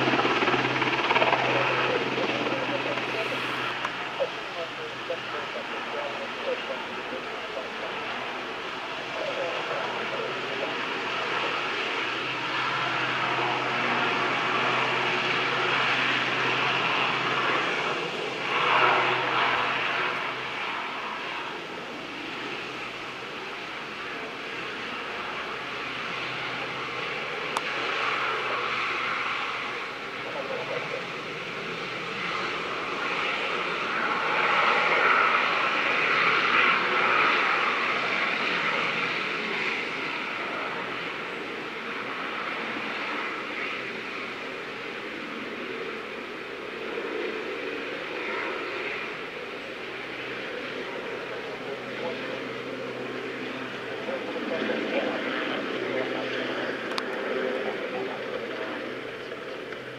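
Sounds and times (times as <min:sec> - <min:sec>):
helicopter rotor and engines: 0:00.0 - 0:59.9.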